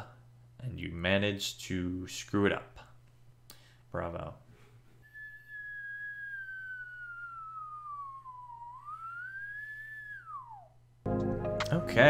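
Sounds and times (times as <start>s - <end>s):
falling whistle tone: 5.0s - 10.8s.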